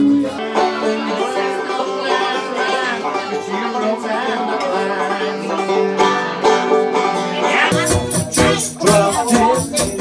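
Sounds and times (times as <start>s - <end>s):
banjo picking: 0.0s - 10.0s.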